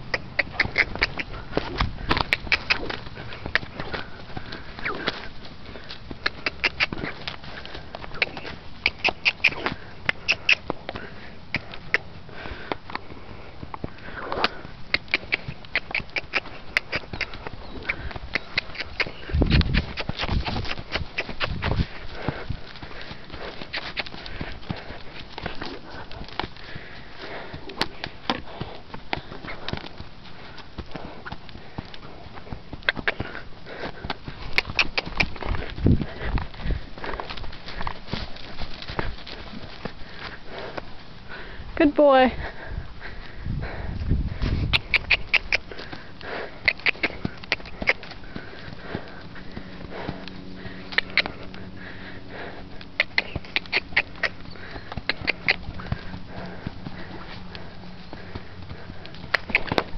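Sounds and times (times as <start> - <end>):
horse hoofbeats on sand: 0.0 - 12.8, 13.5 - 59.9.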